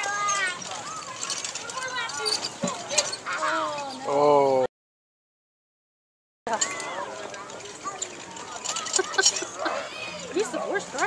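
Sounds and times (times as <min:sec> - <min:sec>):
people talking and calling out: 0:00.0 - 0:04.7, 0:06.5 - 0:11.0.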